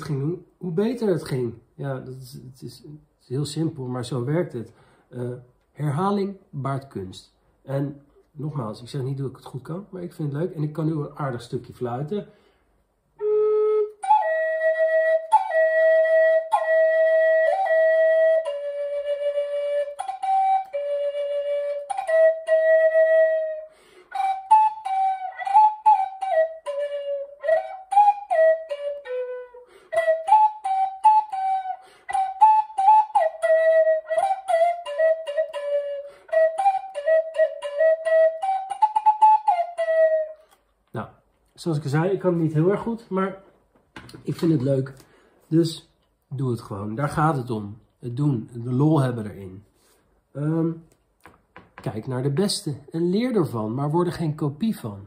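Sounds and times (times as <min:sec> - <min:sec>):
wooden flute melody: 0:13.2 - 0:40.7.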